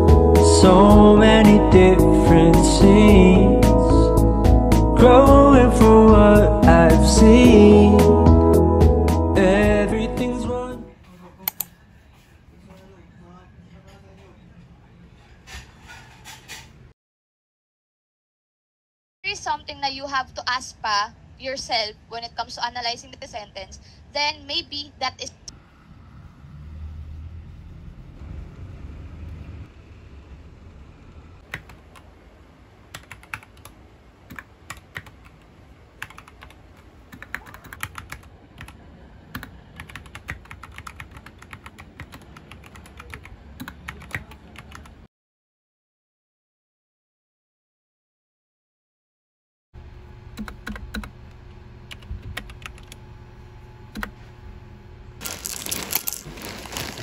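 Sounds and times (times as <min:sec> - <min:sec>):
low rumble: 0:25.5 - 0:31.4
mechanical keyboard typing: 0:31.5 - 0:32.0, 0:32.9 - 0:35.4, 0:36.0 - 0:45.0, 0:50.4 - 0:51.1, 0:51.9 - 0:53.0
cereal clattering into ceramic bowl: 0:55.2 - 0:57.0
foil bag crinkling: 0:55.2 - 0:57.0.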